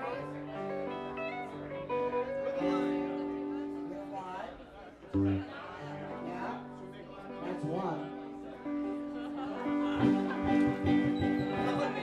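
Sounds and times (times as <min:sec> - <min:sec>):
acoustic and electric guitars: 0:00.0 - 0:12.0
voices in the room: 0:00.0 - 0:12.0.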